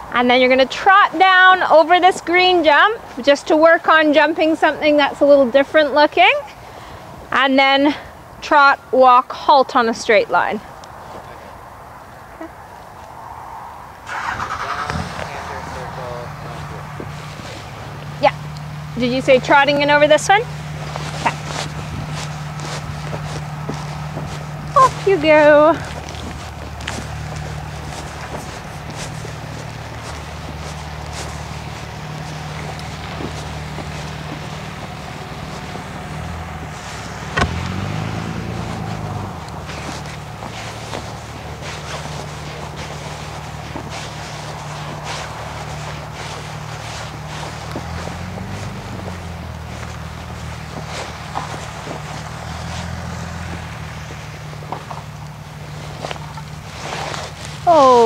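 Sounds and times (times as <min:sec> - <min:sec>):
engine humming: 0:00.0 - 0:58.0.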